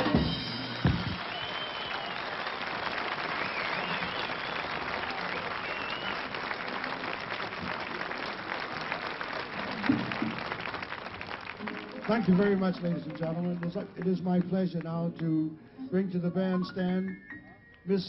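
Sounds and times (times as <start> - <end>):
audience applauding: 0.0 - 15.4.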